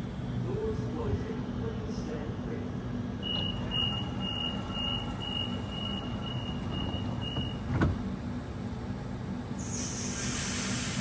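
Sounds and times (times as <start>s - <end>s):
train low hum: 0.0s - 11.0s
high door warning beeps: 3.2s - 7.7s
train doors thumping shut: 3.2s - 8.2s.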